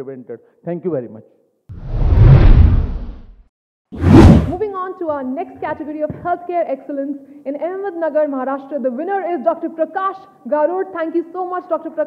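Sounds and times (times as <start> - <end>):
deep swoosh: 1.7 - 3.4, 4.0 - 4.6
woman speaking: 4.5 - 12.0.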